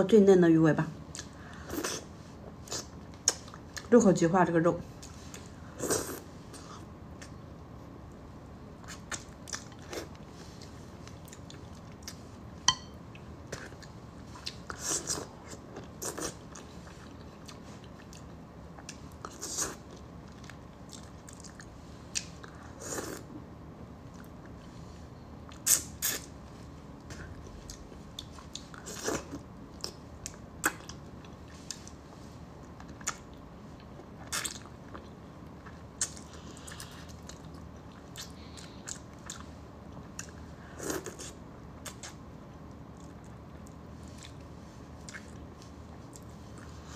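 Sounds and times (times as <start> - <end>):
wet chewing mouth sounds: 8.8 - 12.3, 32.7 - 42.2, 42.9 - 46.9.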